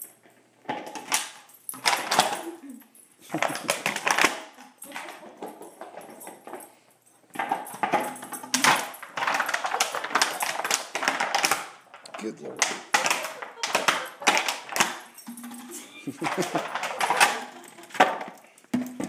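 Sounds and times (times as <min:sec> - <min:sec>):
dog biting plastic bottle: 0:09.2 - 0:15.0.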